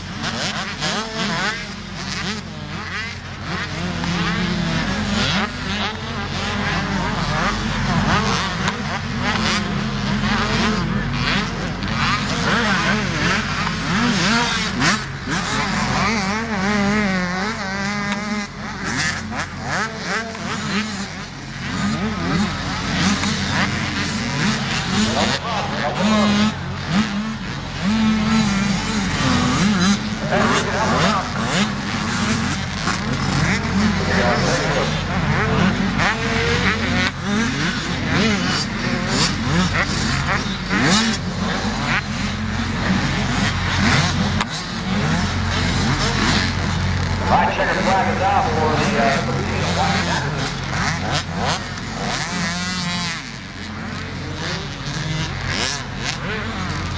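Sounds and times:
dirt bike engines revving: 0.0 - 56.9
steady low hum: 24.6 - 37.3, 40.5 - 51.9.

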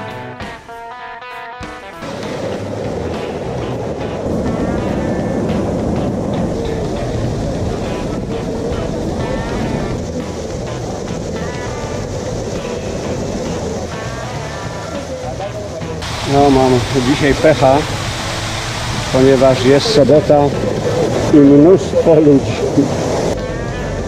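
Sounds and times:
waterfall rushing: 2.0 - 24.0
people's voices: 6.2 - 18.1, 19.0 - 24.0.

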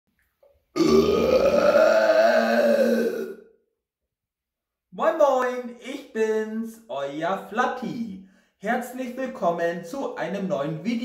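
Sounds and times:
man burping: 0.8 - 3.6.

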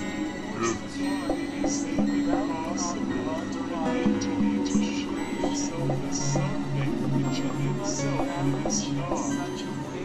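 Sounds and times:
held drone tones: 0.0 - 10.0
voice-like sounds: 0.5 - 1.0.

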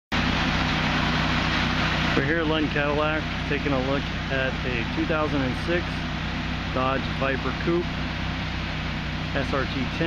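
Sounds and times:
car engine idling: 0.1 - 10.0.

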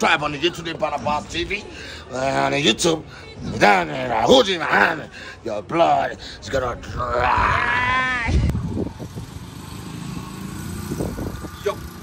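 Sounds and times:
vehicle engine hum: 8.4 - 12.0.

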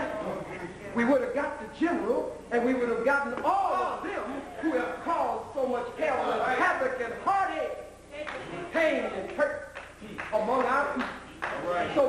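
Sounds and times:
man talking loudly: 1.0 - 7.9.

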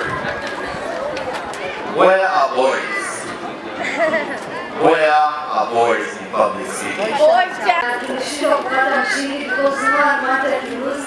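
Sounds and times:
girl speaking into a microphone: 7.1 - 11.0.

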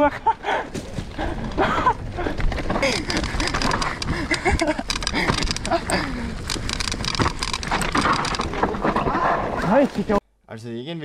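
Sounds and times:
tyre and wind rumble: 0.0 - 10.2
bike clicks and rattles: 0.7 - 10.2.

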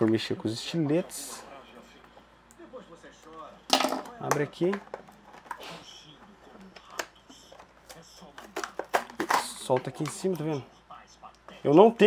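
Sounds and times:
plastic packaging clicks and crackles: 6.6 - 10.5.

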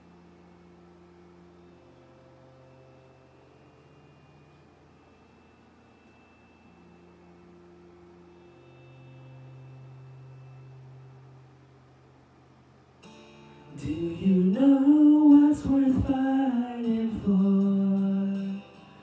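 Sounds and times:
low steady hum: 0.0 - 19.0
quiet sustained chords: 0.0 - 19.0.

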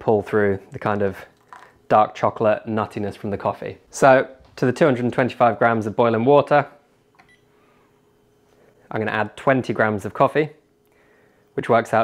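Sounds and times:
man speaking: 0.0 - 6.8, 8.9 - 10.6, 11.6 - 12.0
low room hum: 0.0 - 12.0.

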